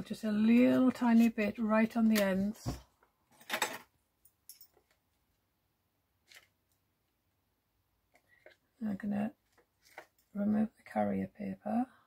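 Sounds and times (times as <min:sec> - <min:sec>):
faint plastic crinkles and taps: 0:09.4 - 0:10.4.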